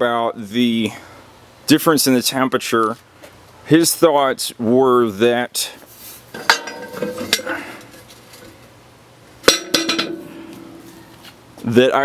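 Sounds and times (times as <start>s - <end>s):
metal clink: 6.4s - 7.6s, 9.5s - 10.8s
metal knock with ringing tone: 9.5s - 10.4s.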